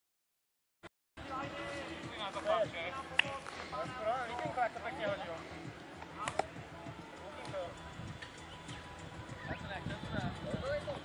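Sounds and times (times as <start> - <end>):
sharp click: 6.2 - 6.5.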